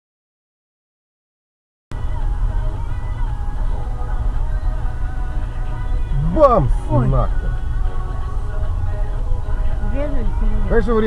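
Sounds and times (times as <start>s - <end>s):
car cabin rumble: 1.9s - 11.0s
faint music: 1.9s - 11.0s.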